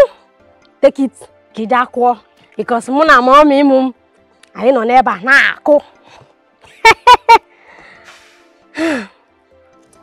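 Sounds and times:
faint background music: 0:00.0 - 0:10.0
person laughing: 0:06.7 - 0:07.4
breathy sigh: 0:07.7 - 0:09.2.

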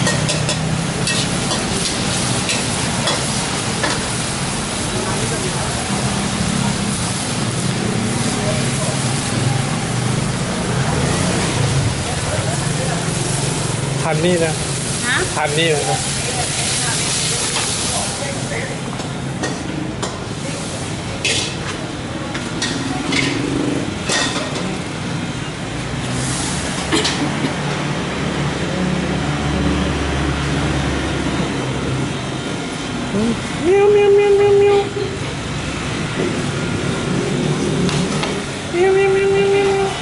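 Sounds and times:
food sizzling in a wok: 0:00.0 - 0:32.8
voices: 0:04.6 - 0:24.9, 0:33.0 - 0:35.4, 0:38.5 - 0:40.0.

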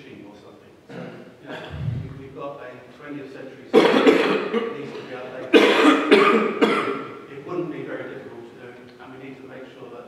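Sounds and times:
man coughing: 0:00.9 - 0:02.2, 0:05.6 - 0:07.0.

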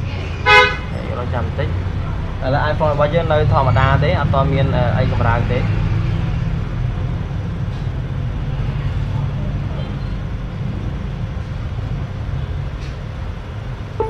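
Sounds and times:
low rumble of road traffic: 0:00.0 - 0:14.0.

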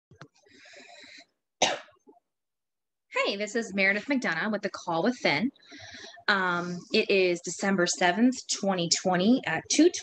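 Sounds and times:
woman coughing: 0:01.6 - 0:02.0.

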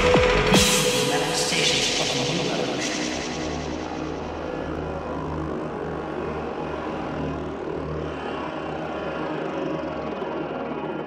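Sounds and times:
low sustained bass: 0:00.0 - 0:11.0
rushing synth drone: 0:00.0 - 0:11.0.

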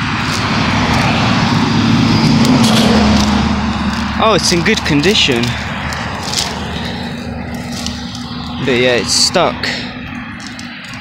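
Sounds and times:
low hum: 0:00.0 - 0:11.0
road traffic rushing: 0:00.0 - 0:11.0.

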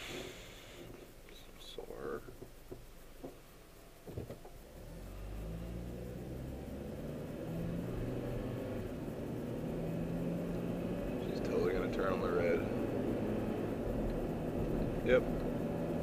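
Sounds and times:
road and tyre noise: 0:00.0 - 0:16.0
car engine accelerating: 0:04.3 - 0:16.0.

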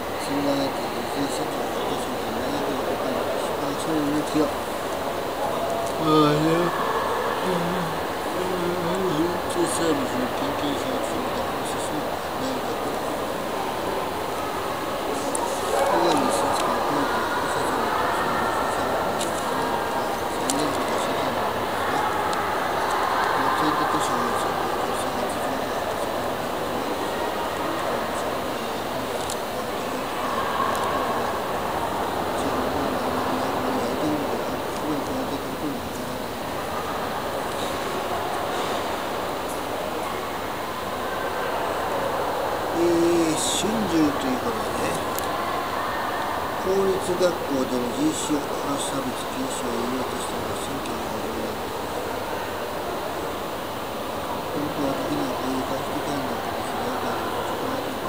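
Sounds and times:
faint distant voices: 0:00.0 - 0:58.0
indoor lobby background noise: 0:00.0 - 0:58.0
large hall hum: 0:00.0 - 0:58.0.

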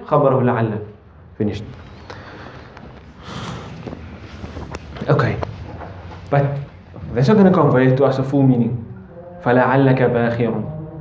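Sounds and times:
clothing rustle: 0:01.8 - 0:07.2.

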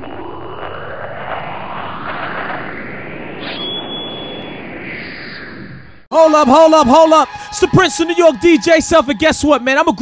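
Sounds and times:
rushing noise with rising sweeps: 0:00.0 - 0:06.1
thin high whistle-like tone: 0:03.4 - 0:05.6.

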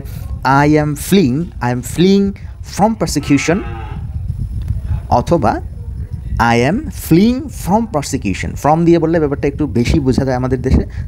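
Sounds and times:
man speaking: 0:00.0 - 0:03.7, 0:05.0 - 0:11.0
steady low rumble: 0:00.0 - 0:11.0.

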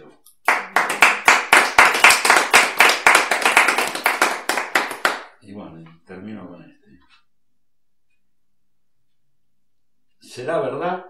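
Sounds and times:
group hand clapping: 0:00.4 - 0:05.4.

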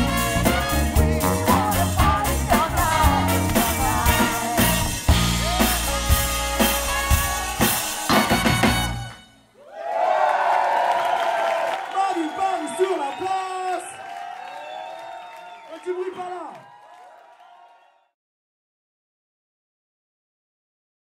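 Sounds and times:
funk band playing live: 0:00.0 - 0:09.2
audience cheering and whooping: 0:05.2 - 0:06.3, 0:09.6 - 0:18.1.

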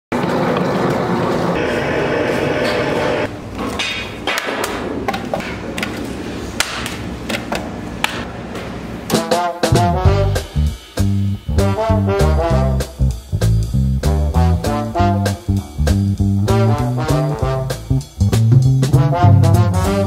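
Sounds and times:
swing music with brass: 0:09.1 - 0:20.0.

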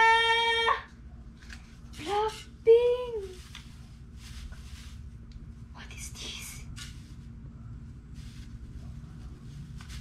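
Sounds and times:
soft fabric rustling: 0:01.3 - 0:10.0.

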